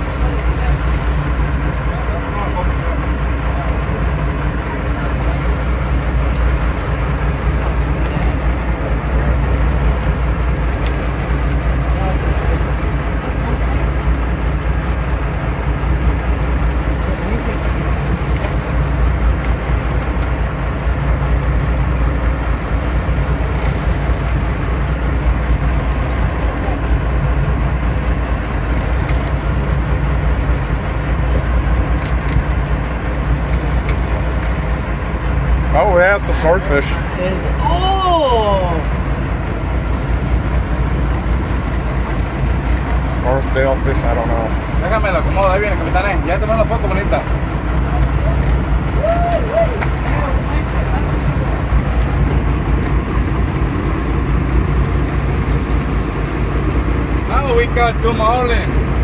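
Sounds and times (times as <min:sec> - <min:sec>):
boat engine droning: 0:00.0 - 0:59.0
water noise: 0:00.0 - 0:59.0.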